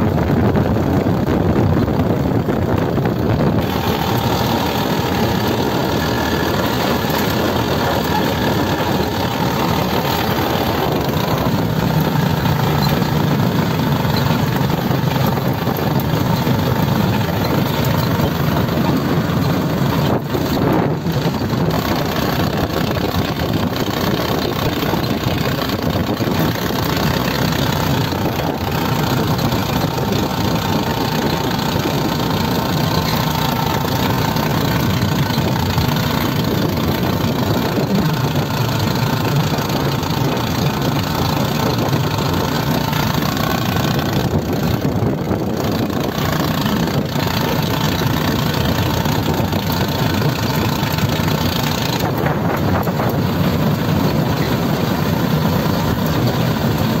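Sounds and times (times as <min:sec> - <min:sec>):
road noise: 0:00.0 - 0:57.0
vehicle engine running: 0:00.0 - 0:57.0
wind noise: 0:00.0 - 0:57.0.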